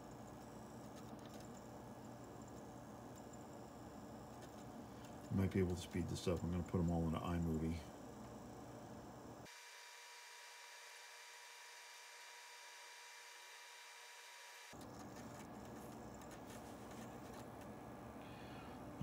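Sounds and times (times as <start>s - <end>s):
thin steady tones: 0.0s - 17.4s.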